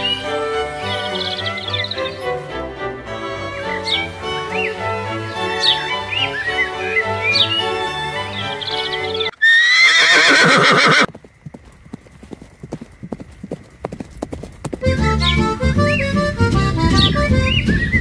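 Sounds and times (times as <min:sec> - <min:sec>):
background music: 0:00.0 - 0:09.3, 0:14.8 - 0:18.0
hooves clip-clopping: 0:07.7 - 0:18.0
horse whinny: 0:08.8 - 0:11.1.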